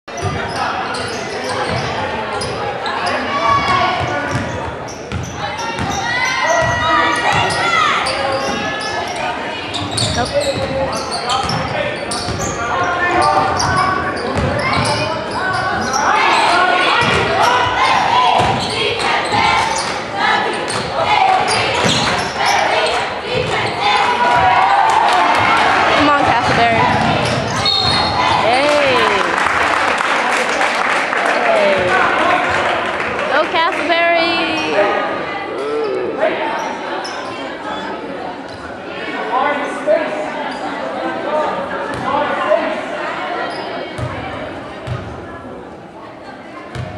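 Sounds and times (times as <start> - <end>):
crowd voices and shouts echoing: 0.0 - 46.9
people talking: 0.1 - 29.5, 30.2 - 46.9.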